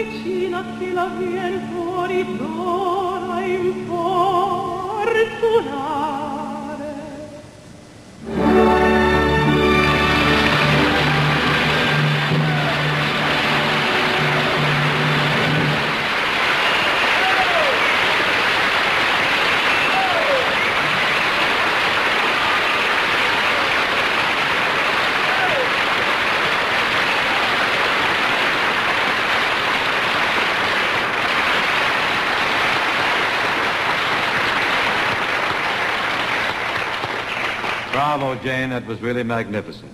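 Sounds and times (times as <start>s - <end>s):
audience applauding: 8.3s - 38.7s.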